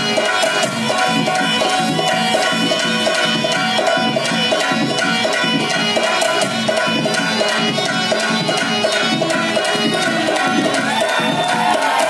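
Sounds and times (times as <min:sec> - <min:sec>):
folk music: 0:00.0 - 0:12.0
hand drums beating: 0:00.0 - 0:12.0.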